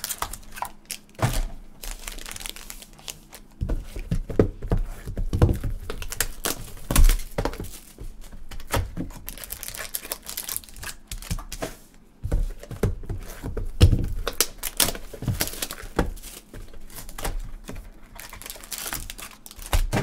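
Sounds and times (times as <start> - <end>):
foil wrappers crinkling and tearing: 0.0 - 4.2, 5.7 - 11.6, 13.5 - 20.0.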